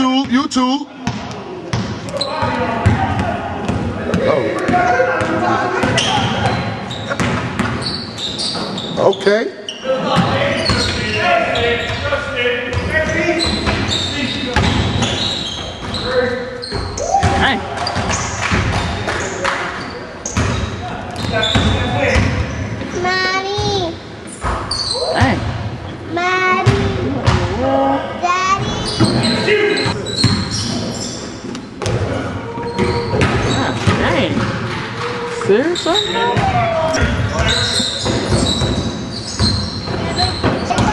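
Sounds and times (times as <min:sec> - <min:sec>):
players shouting and chatting: 0:00.0 - 0:40.9
basketball bouncing on court: 0:01.0 - 0:08.8, 0:12.7 - 0:16.0, 0:16.7 - 0:19.0, 0:20.2 - 0:22.5, 0:23.6 - 0:25.6, 0:26.6 - 0:27.6, 0:28.6 - 0:30.7, 0:31.8 - 0:35.0, 0:35.8 - 0:40.9
basketball bouncing on hardwood: 0:07.1 - 0:07.8.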